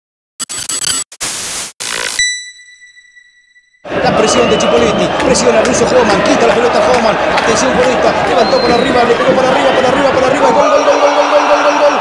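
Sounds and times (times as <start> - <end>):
tv static hiss bursts: 0.6 - 2.2.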